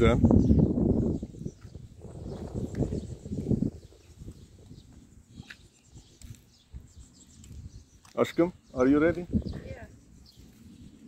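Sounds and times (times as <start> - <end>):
faint bird chirps: 0.3 - 11.0.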